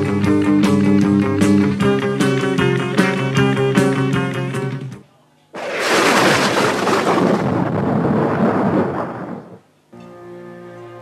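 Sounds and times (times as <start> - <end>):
thunderclap rolling: 5.6 - 9.7.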